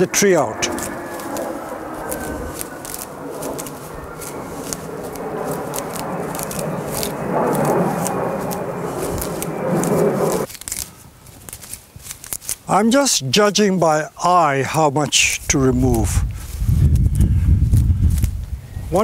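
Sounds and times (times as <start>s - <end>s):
leaves and twigs snapping: 0.7s - 12.7s, 17.7s - 18.4s.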